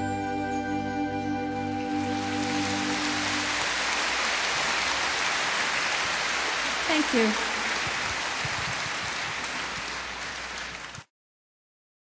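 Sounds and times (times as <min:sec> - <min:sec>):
audience applauding: 0:01.9 - 0:11.1.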